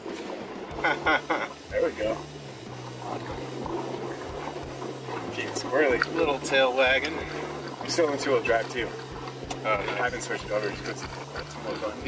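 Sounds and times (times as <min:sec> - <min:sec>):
car engine drone: 0:00.0 - 0:12.0
tyre and road noise: 0:00.0 - 0:12.0.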